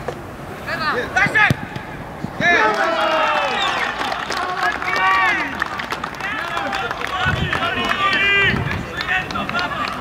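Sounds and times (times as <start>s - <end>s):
people shouting excitedly: 2.4s - 4.2s, 6.3s - 10.0s.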